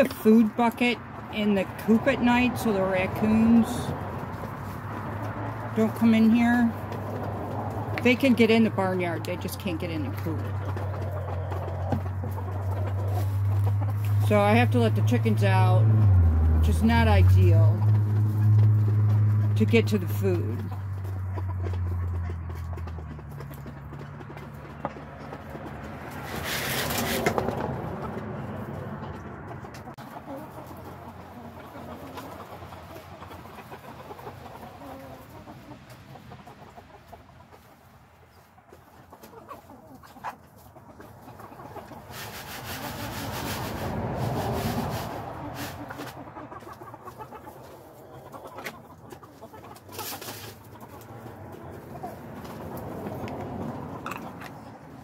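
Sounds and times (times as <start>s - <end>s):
chickens clucking: 0.0s - 55.0s.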